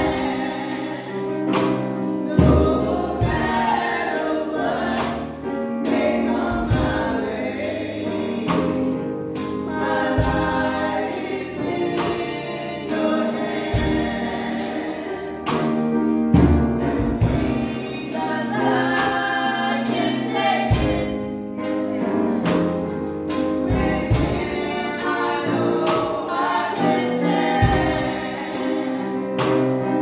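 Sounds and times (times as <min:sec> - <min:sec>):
women singing gospel: 0:00.0 - 0:15.8, 0:16.8 - 0:29.8
instrumental accompaniment with beat: 0:00.0 - 0:30.0.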